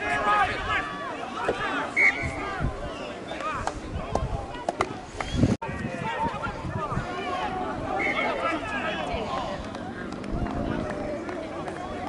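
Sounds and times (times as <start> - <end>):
players and spectators calling out: 0.0 - 12.0.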